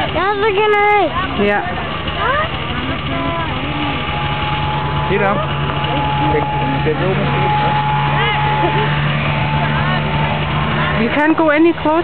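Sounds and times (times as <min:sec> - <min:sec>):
snowmobile engines idling: 0:00.0 - 0:12.0
spectators chattering: 0:00.0 - 0:12.0.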